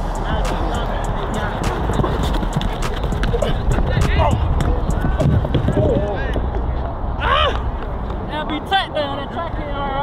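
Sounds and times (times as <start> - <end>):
footsteps sprinting on turf: 1.7 - 6.4.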